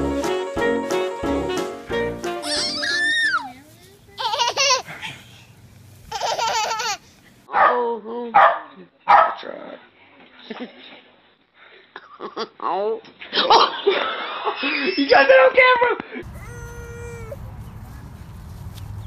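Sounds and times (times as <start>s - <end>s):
background music: 0.0s - 3.1s
baby laughing and squealing: 2.4s - 3.5s, 4.2s - 4.9s, 6.1s - 7.1s, 16.2s - 17.4s.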